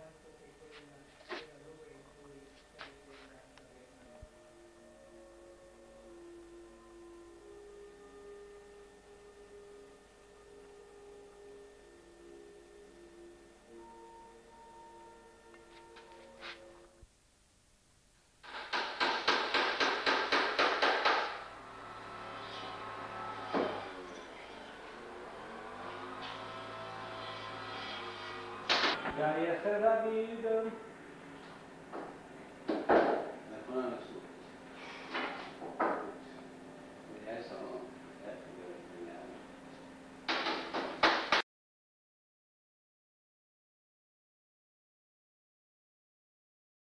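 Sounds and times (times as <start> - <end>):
rapid sharp knocks: 18.4 - 21.4, 40.3 - 41.4
low hum: 21.2 - 40.3.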